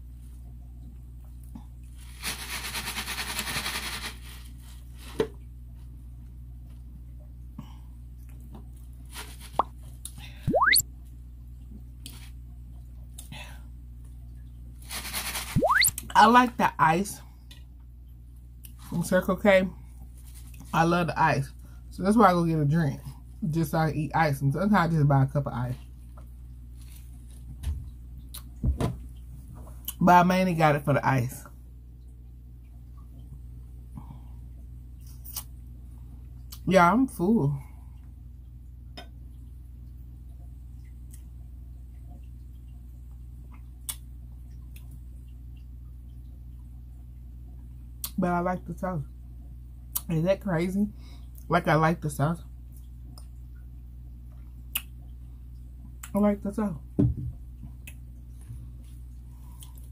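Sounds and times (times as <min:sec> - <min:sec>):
steady low hum: 0:00.0 - 0:59.9
faint small sounds: 0:37.6 - 0:48.2, 0:52.4 - 0:59.9.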